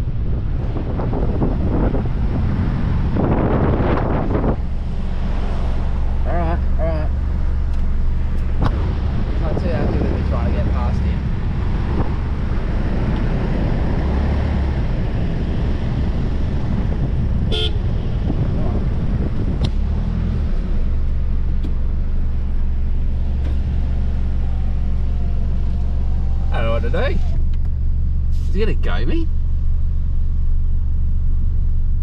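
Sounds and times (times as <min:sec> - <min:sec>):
car engine running: 0:00.0 - 0:32.0
wind and cab noise rumble: 0:00.0 - 0:32.0
car horn toot: 0:17.5 - 0:18.2.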